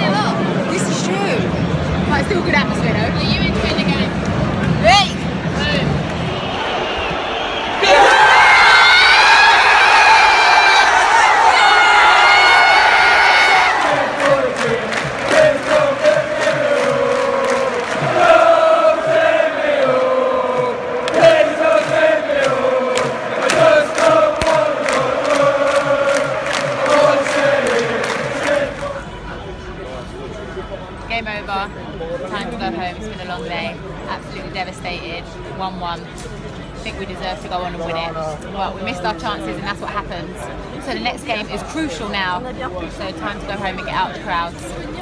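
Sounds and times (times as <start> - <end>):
stadium crowd chanting: 5.7 - 29.3
rhythmic clapping: 13.4 - 29.0.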